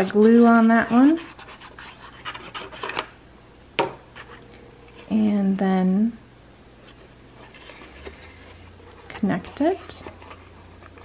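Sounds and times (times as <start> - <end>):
glue pen scratching paper: 0.0 - 2.8.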